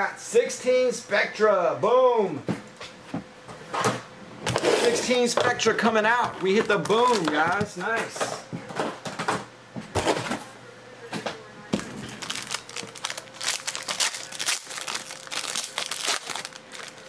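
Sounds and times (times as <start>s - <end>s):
foil wrapper crinkling: 6.4s - 7.7s, 12.1s - 17.0s
foil wrapper tearing: 12.1s - 17.0s.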